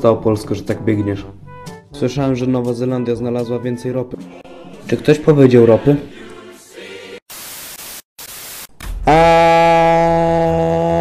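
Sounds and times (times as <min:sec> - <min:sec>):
harsh static hiss bursts: 0:07.2 - 0:08.8.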